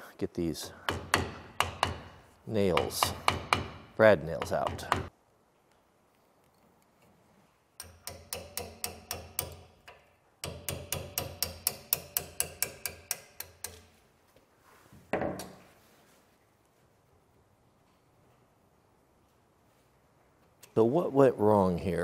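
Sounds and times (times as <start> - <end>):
hammer tapping on steel: 0.6 - 5.1, 7.8 - 13.9.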